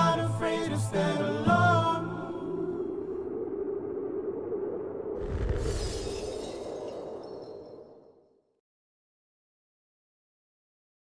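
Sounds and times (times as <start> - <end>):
low drone: 0.0 - 6.1.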